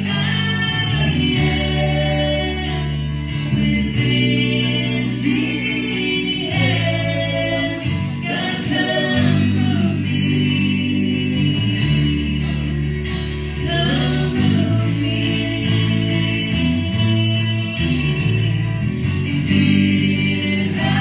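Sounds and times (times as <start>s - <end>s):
strummed guitars: 0.0s - 21.0s
voices singing together: 0.0s - 21.0s
woman singing lead: 0.0s - 21.0s.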